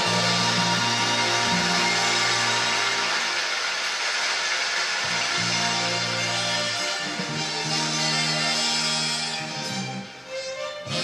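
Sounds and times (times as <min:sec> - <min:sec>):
live band playing instrumental: 0:00.0 - 0:03.9, 0:05.0 - 0:11.0.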